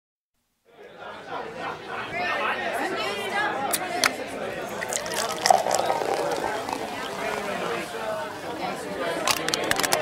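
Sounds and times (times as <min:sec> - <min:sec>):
people chattering: 0:00.6 - 0:10.0.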